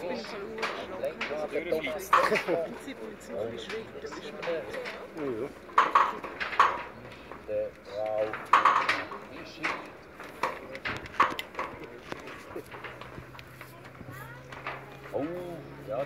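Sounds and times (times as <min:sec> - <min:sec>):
people talking: 0:00.0 - 0:06.2, 0:13.6 - 0:16.0.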